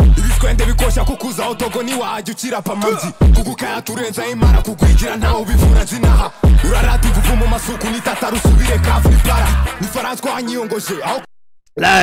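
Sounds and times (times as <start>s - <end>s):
rapping over trap beat: 0.0s - 11.3s.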